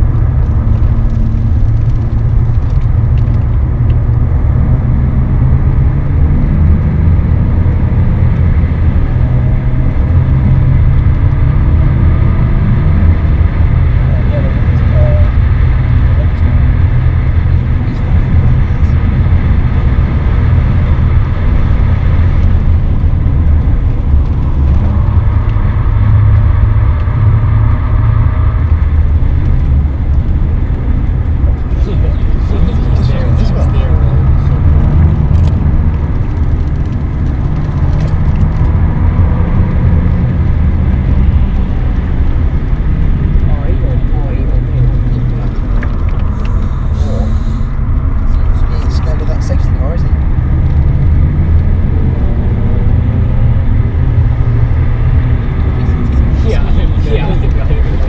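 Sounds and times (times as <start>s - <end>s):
car engine droning: 0.0s - 58.0s
road noise inside car: 0.0s - 58.0s.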